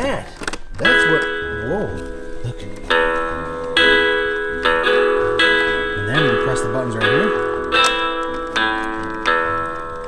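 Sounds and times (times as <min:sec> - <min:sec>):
toy guitar strummed chords: 0:00.6 - 0:10.0.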